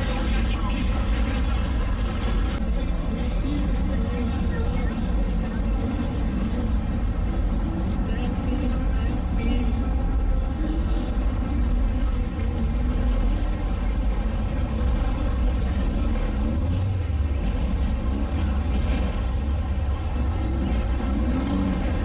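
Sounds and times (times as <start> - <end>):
car engine and exhaust rumble: 0.0 - 22.0
faint voices: 0.0 - 22.0.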